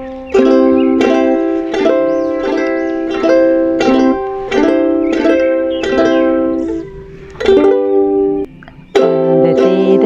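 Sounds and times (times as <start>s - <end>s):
ukulele strummed chords: 0.0s - 10.0s.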